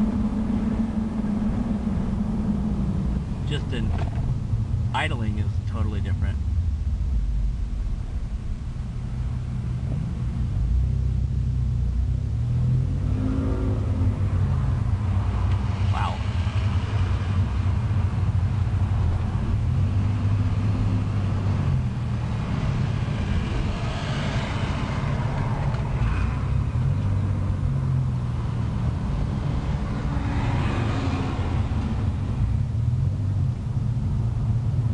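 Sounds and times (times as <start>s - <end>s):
truck exhaust rumble: 0.0s - 34.9s.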